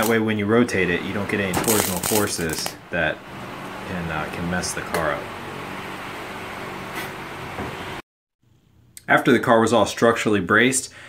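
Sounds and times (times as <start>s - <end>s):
fan running: 0.0s - 8.0s
welder arc running: 1.0s - 8.0s.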